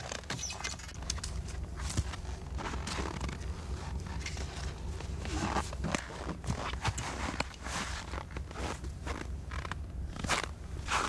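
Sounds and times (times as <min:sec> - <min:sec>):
footsteps crunching on snow: 0:00.0 - 0:11.0
steady low hum: 0:00.0 - 0:11.0.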